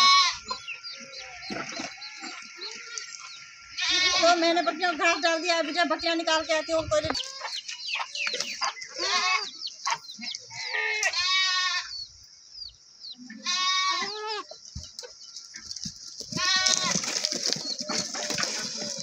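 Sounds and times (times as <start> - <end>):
goats bleating: 0.0 - 3.1, 3.7 - 4.6, 9.0 - 9.6, 10.5 - 11.9, 13.3 - 14.5, 16.3 - 19.0.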